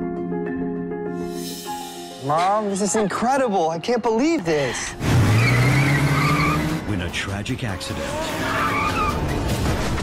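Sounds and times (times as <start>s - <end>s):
tyre squeal: 5.2s - 6.8s, 8.0s - 9.2s.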